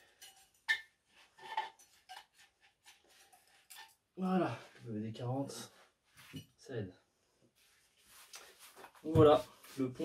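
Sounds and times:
faint scraping and rustling: 0.0 - 6.6, 7.5 - 10.0.

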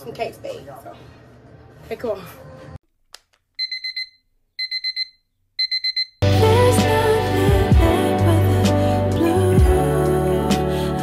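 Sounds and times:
alarm clock beeping: 3.6 - 6.2.

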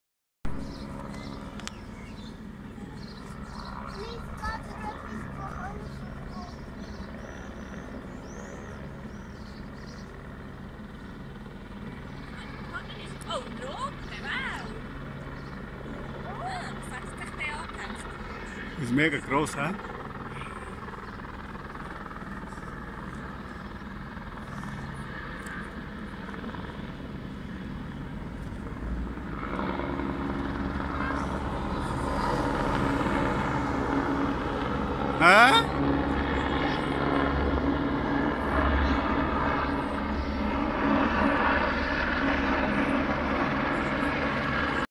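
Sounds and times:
distant helicopter hovering: 0.5 - 44.9.

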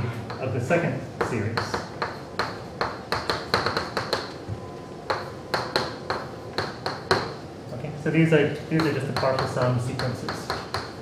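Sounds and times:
chalk tapping and scratching: 8.8 - 11.0.

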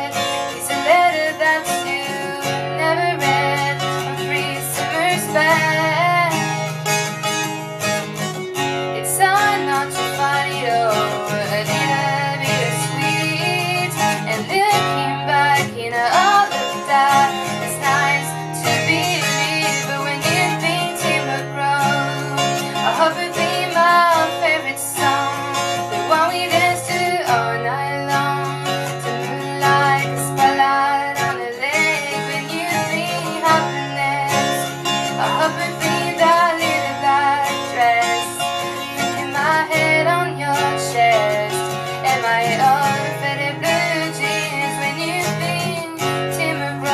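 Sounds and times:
woman singing: 0.0 - 6.7, 8.8 - 46.9
strummed acoustic guitar: 0.0 - 46.9.

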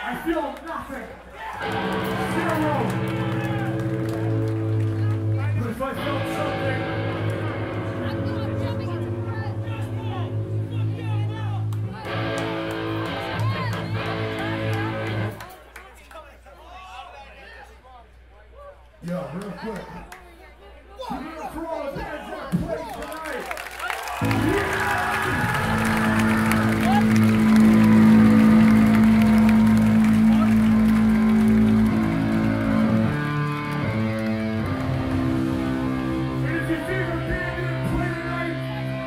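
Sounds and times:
crowd shouts: 1.2 - 4.5, 23.8 - 39.0
electric guitar chords ringing: 1.6 - 15.4, 24.2 - 39.0.

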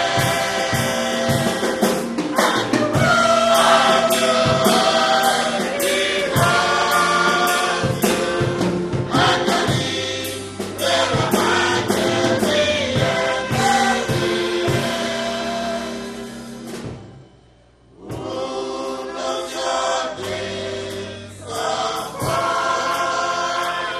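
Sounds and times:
gospel choir singing: 0.0 - 17.2, 17.9 - 23.9
steady drum beat: 0.0 - 17.4, 18.0 - 23.9
band playing: 0.0 - 23.9.

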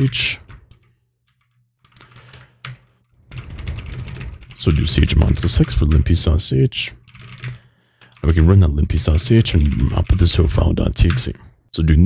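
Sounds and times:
keyboard keystrokes: 0.0 - 6.3, 7.0 - 11.4.

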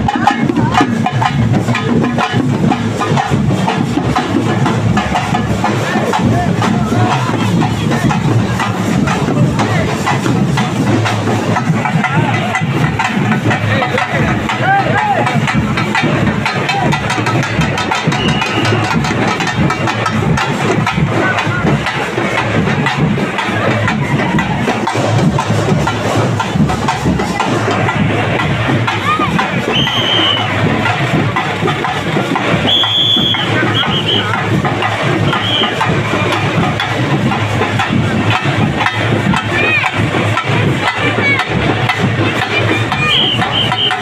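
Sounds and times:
crowd voices: 0.0 - 44.0
fast loud procession drumming: 0.0 - 44.0.

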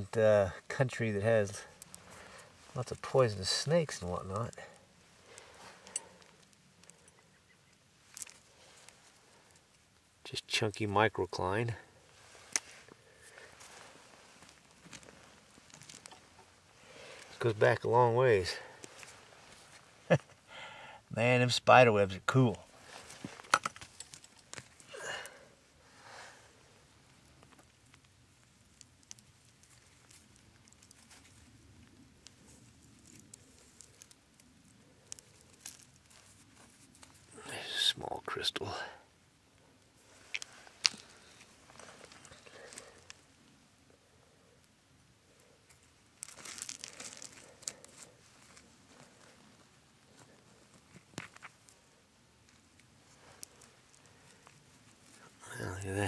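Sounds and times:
soil and rock handled by hand: 0.0 - 20.3, 21.4 - 38.8, 39.9 - 43.6, 44.4 - 56.0.

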